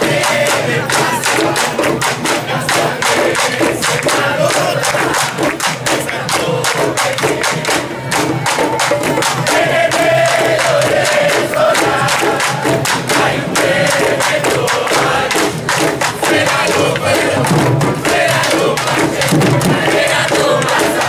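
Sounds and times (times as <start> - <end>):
drum line playing parade rhythm: 0.0 - 21.0.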